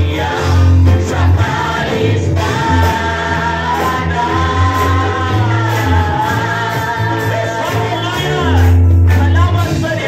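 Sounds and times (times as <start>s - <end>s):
amplified accompaniment with bass: 0.0s - 10.0s
group singing worship song: 0.0s - 10.0s
singer on a microphone: 0.0s - 10.0s.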